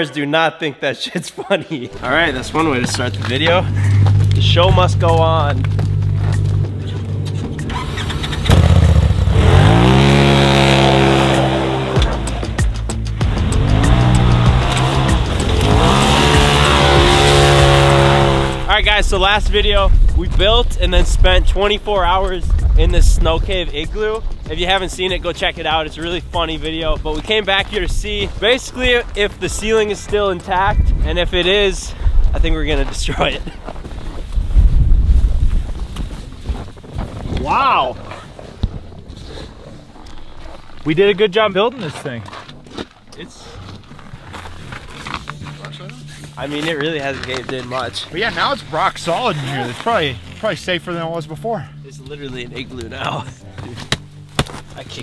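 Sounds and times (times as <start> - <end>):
off-road vehicle engine revving: 2.0 - 19.2
wind buffeting microphone: 18.3 - 40.0.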